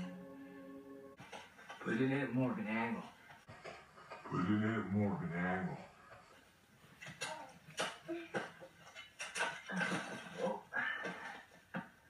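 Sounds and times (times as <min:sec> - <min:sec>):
soft knocks and clatter: 0:01.2 - 0:02.1, 0:03.0 - 0:04.3, 0:05.8 - 0:12.0.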